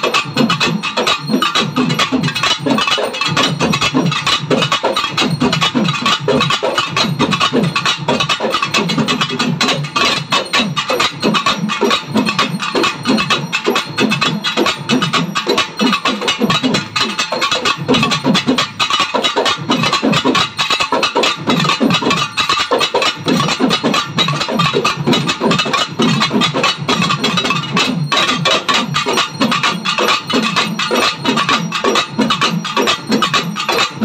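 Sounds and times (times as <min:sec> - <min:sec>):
drums played with sticks: 0:00.0 - 0:34.0.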